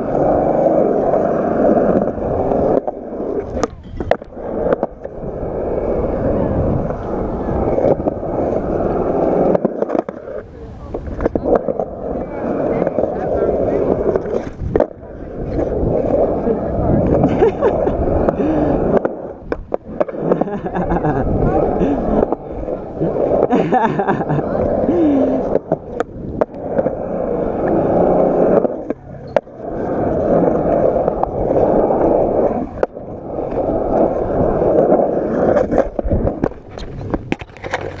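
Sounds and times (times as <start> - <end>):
skateboard clacking on ground: 0.0 - 38.0
skateboard wheels rolling on concrete: 0.0 - 38.0.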